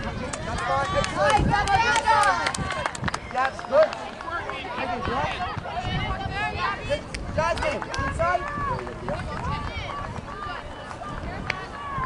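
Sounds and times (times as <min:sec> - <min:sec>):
people talking and calling out: 0:00.0 - 0:12.0
wind rumble on microphone: 0:00.0 - 0:12.0.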